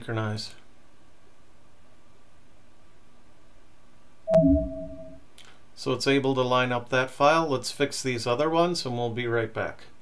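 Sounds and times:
computer alert chime: 4.3 - 5.2.

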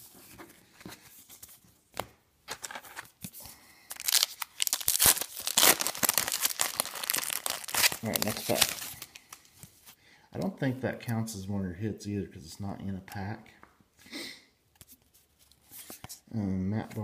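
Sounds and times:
wrapper torn open and crinkled: 3.9 - 9.4.

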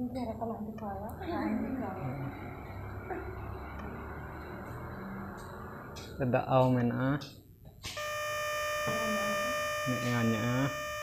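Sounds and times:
steady electronic chord tone: 8.0 - 11.0.

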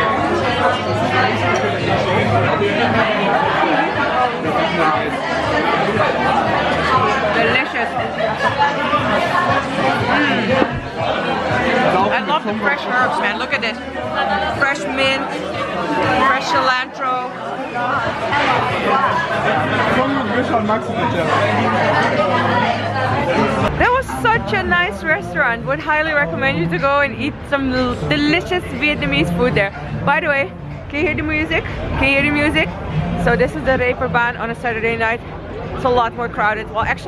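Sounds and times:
babble of overlapping conversation: 0.0 - 37.0.

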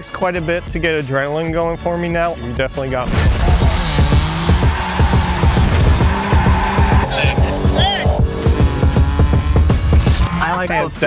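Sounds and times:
car engine revving: 3.0 - 10.8
tyres squealing: 3.2 - 10.7
music with fast steady beat: 3.2 - 11.0.

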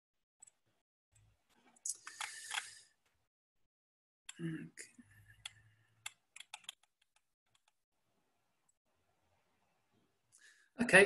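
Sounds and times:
computer keys clicking: 5.4 - 7.8.

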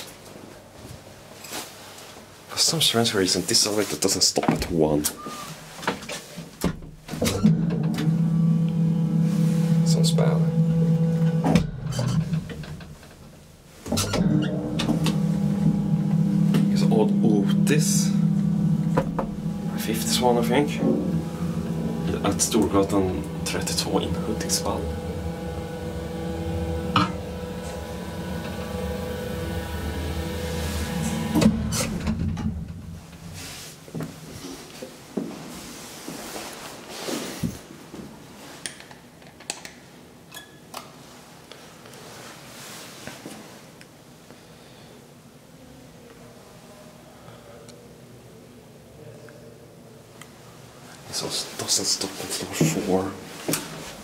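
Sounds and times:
elevator hum: 7.2 - 33.7.

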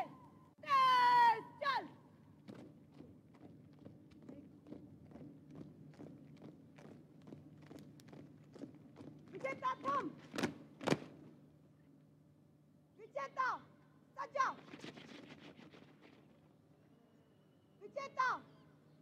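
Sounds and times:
person shouting drill command: 0.0 - 1.9, 9.4 - 10.2
marching footsteps in step: 2.4 - 11.2
boot stamps: 10.2 - 11.2.

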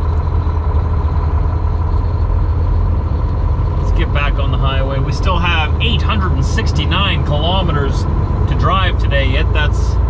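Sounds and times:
truck diesel engine drone: 0.0 - 10.0.

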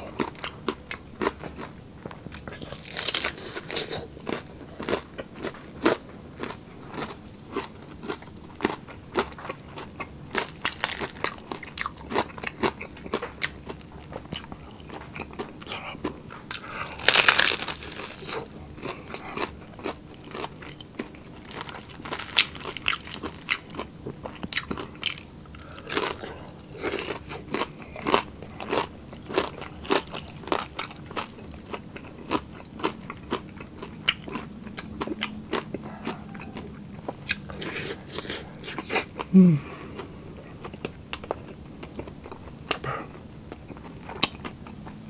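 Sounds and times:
crunchy chewing close up: 0.0 - 45.0.

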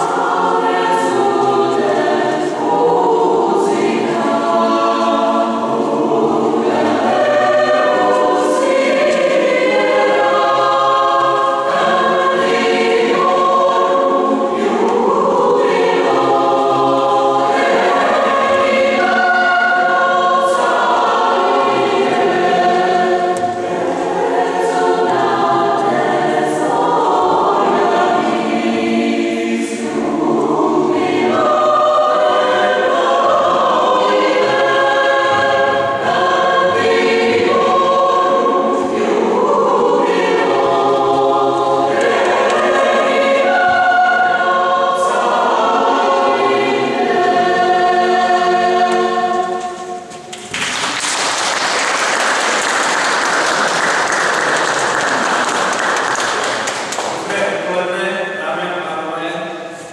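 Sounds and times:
mixed choir singing: 0.0 - 59.9.

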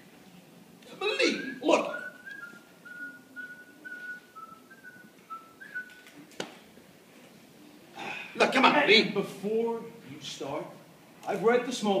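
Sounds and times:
person whistling a tune: 1.4 - 6.0.

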